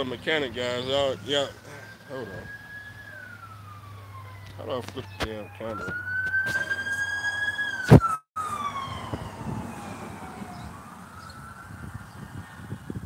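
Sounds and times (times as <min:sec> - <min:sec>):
siren wailing: 0:00.0 - 0:13.0.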